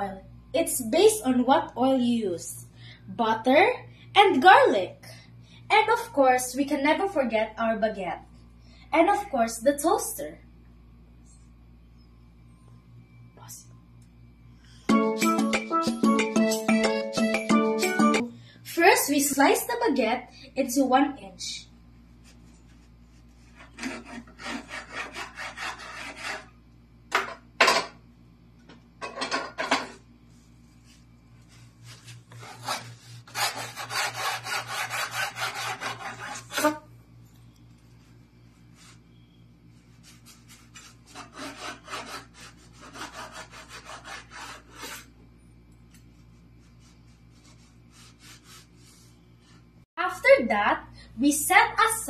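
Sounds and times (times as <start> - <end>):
cleaver sawing through bread: 23.4 - 26.5, 32.3 - 36.8, 40.0 - 45.1.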